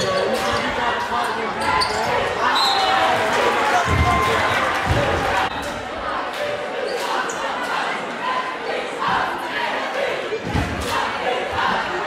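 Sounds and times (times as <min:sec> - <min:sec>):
crowd chatter in a gym: 0:00.0 - 0:12.0.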